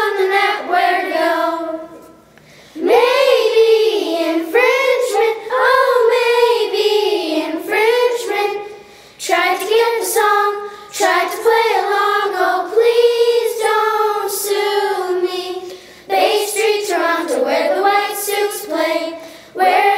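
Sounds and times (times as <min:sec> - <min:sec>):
children singing: 0:00.0 - 0:02.2, 0:02.8 - 0:19.9.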